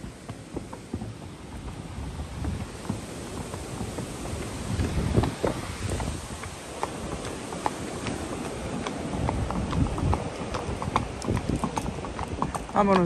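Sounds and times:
horse hooves clip-clopping: 0.0s - 13.0s.

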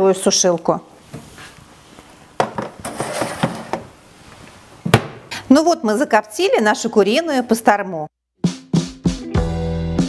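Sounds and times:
wire rack clattering and scraping: 2.6s - 3.8s.

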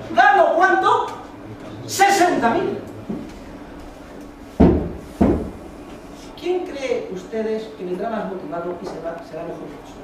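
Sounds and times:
loud dull thumps: 4.6s - 5.6s.

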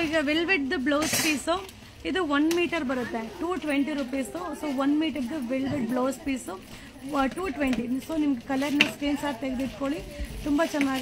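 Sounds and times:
woman speaking: 0.0s - 11.0s.

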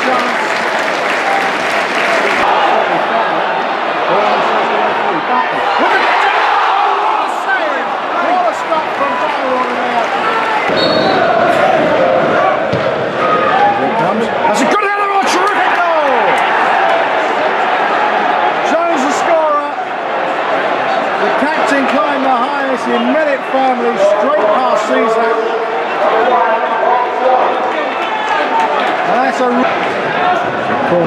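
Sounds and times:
crowd shouting and chanting: 0.0s - 31.0s.

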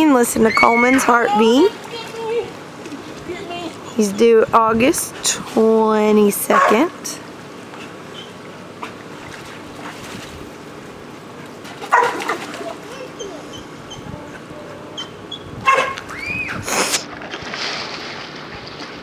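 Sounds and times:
pool water splashing: 0.0s - 19.0s.

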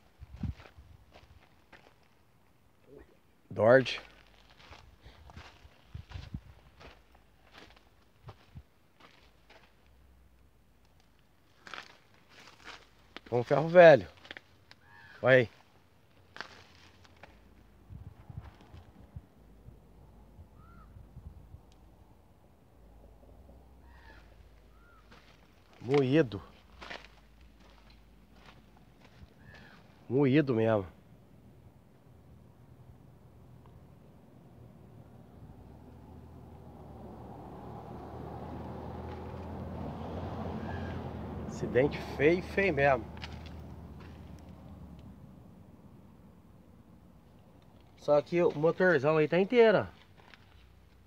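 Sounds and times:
vehicle engine rumble: 15.5s - 30.1s, 30.9s - 48.1s
faint bird chirps: 20.5s - 21.0s, 23.8s - 25.1s.

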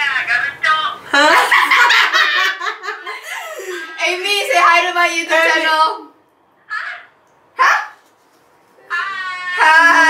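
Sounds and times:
young women laughing: 1.1s - 4.0s.

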